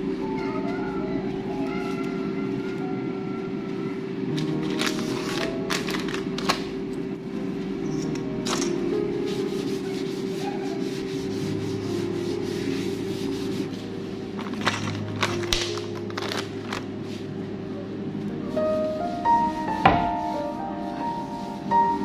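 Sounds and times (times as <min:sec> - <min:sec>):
background music with held notes: 0:00.0 - 0:22.0
cloth rubbing on wooden board: 0:09.1 - 0:14.4, 0:18.6 - 0:22.0.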